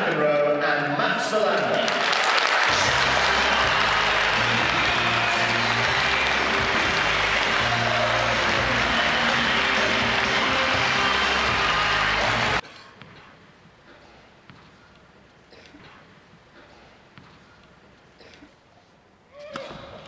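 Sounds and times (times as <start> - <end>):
audience applauding: 1.4 - 12.6
loud music with bass line: 2.7 - 12.6.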